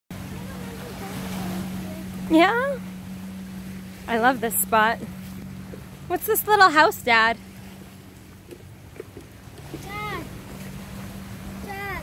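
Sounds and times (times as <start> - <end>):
steady low hum: 0.1 - 12.0
faint voices talking: 0.2 - 3.0.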